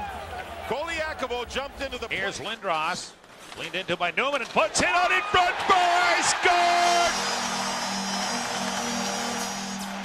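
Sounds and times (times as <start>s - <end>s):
arena crowd cheering: 0.0s - 1.4s, 4.7s - 10.0s.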